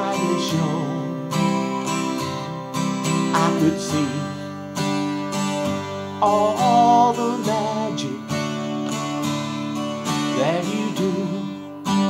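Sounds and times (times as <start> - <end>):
person singing: 0.0 - 1.8, 3.1 - 4.6, 6.0 - 8.5, 10.2 - 12.0
acoustic guitar strumming: 0.0 - 12.0.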